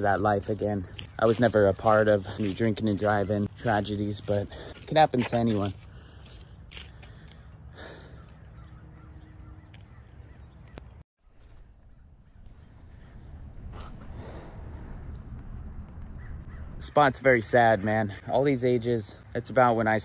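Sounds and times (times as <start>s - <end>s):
faint crow caws: 5.8s - 15.3s, 16.1s - 16.8s.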